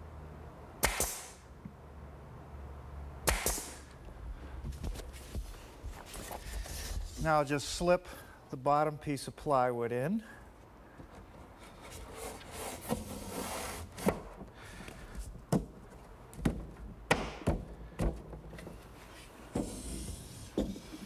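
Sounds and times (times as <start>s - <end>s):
wooden panel sliding with scrape: 11.6s - 14.2s, 19.0s - 21.0s
sharp wooden knocks: 16.4s - 18.4s.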